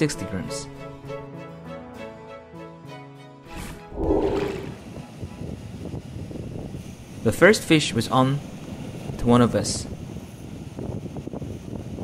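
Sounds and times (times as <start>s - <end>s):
wind buffeting microphone: 3.9s - 7.2s, 8.4s - 12.0s.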